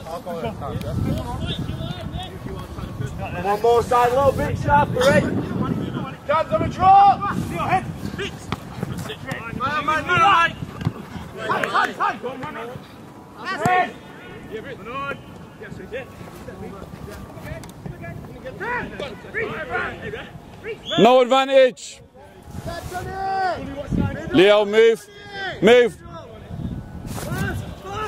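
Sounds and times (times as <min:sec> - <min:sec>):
players and coaches shouting: 0:03.4 - 0:16.0, 0:17.9 - 0:26.6.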